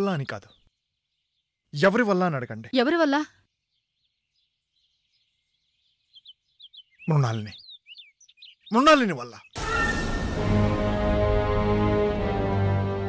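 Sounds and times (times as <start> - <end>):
small birds chirping: 0.0 - 9.6.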